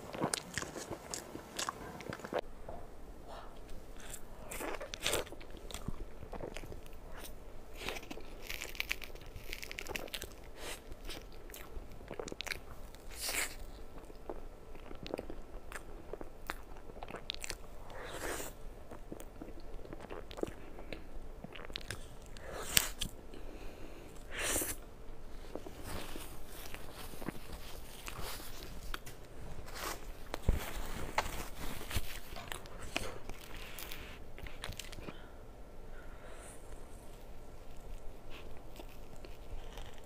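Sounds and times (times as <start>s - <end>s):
close-miked eating and chewing: 0.0s - 40.0s.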